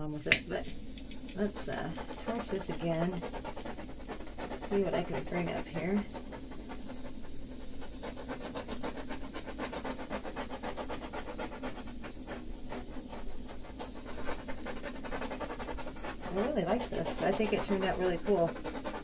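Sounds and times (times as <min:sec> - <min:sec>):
steady low hum: 0:00.0 - 0:19.0
wipe rubbing over wet paint: 0:01.4 - 0:19.0.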